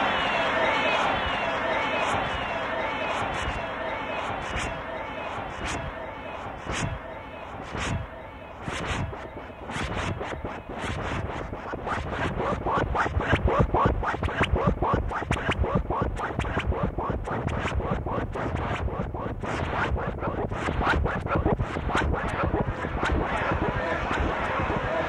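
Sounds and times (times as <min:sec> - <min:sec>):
stuttering chopped sample: 0:06.6 - 0:07.0, 0:07.6 - 0:25.0
glitchy electronic music: 0:06.6 - 0:25.0.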